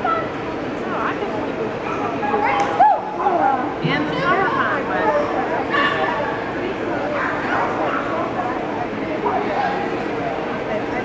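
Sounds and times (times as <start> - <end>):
people talking in a hall: 0.0 - 11.0.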